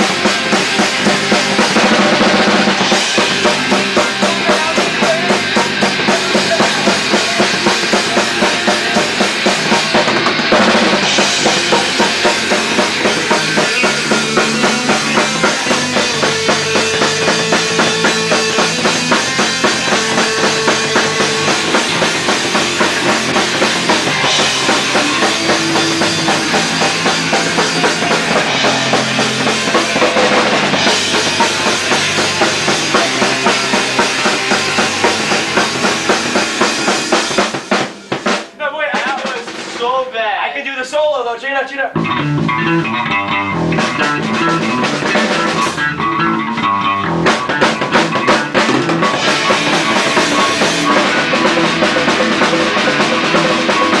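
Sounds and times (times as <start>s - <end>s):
loose guitar notes: 0.0s - 37.7s, 41.9s - 54.0s
rock band playing: 0.0s - 54.0s.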